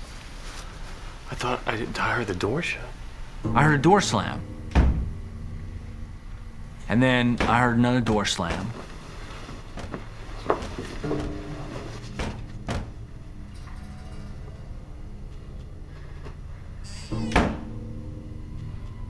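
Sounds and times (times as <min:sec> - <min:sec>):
low music: 0:01.2 - 0:19.0
door slamming shut: 0:04.6 - 0:05.2, 0:10.6 - 0:13.1, 0:17.1 - 0:17.8.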